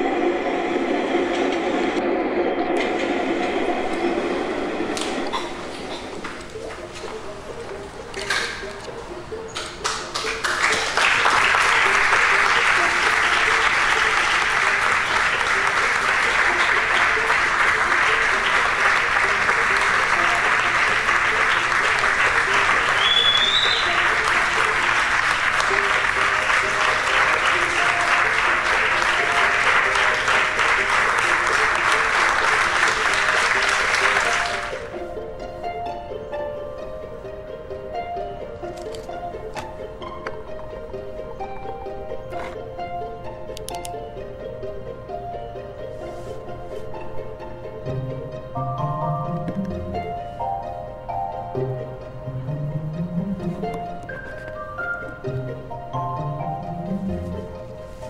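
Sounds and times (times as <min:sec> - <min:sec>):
audience applause: 0:09.6 - 0:35.0.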